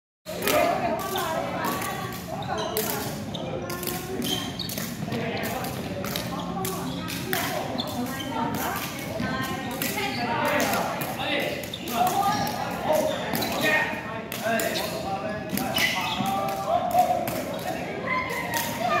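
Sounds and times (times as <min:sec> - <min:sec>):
people talking and calling: 0:00.3 - 0:19.0.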